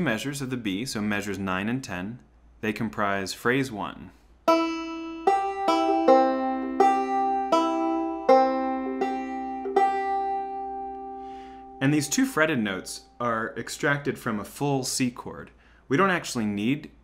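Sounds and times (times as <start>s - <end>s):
banjo notes plucked: 4.5s - 12.9s.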